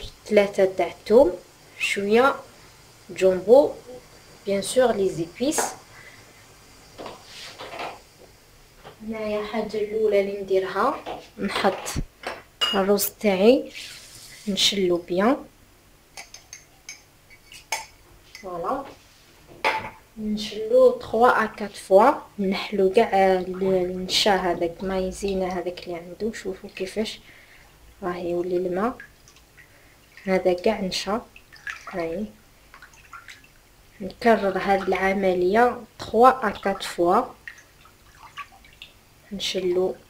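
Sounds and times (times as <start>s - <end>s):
kitchenware clinking on glass bowl: 12.6s - 12.9s, 16.2s - 18.0s
person speaking: 18.4s - 18.9s, 34.0s - 37.4s
rice being rinsed in water: 20.4s - 40.0s.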